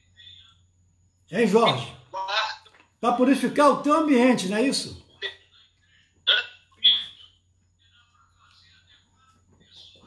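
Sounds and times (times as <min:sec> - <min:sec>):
man's voice over phone speaker: 0:00.0 - 0:00.7, 0:01.3 - 0:10.0.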